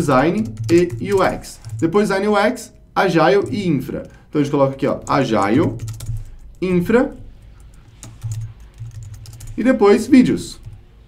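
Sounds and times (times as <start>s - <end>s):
computer keyboard key clicks: 5.0s - 6.6s, 7.4s - 9.6s.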